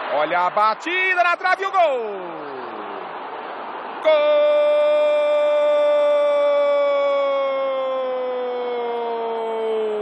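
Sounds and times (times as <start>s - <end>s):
stadium crowd noise: 0.0s - 10.0s
man shouting: 0.8s - 2.7s, 4.0s - 10.0s.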